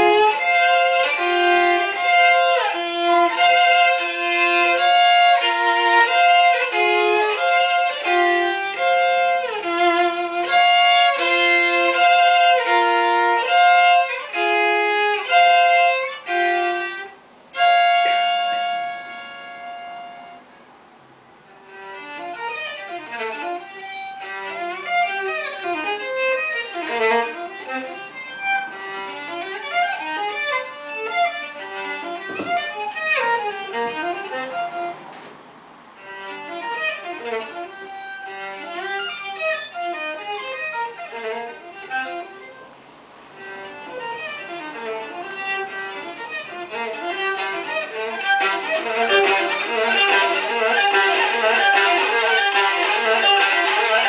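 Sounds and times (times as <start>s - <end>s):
solo violin playing: 0.0s - 54.0s.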